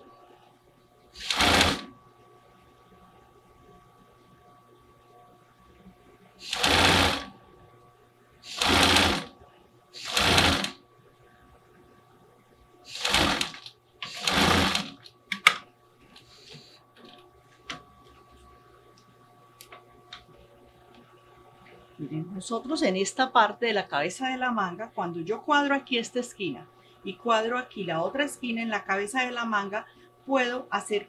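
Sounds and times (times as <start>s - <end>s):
sewing machine stitching: 1.2s - 1.9s, 6.4s - 7.3s, 8.5s - 9.3s, 10.0s - 10.8s, 12.9s - 15.0s.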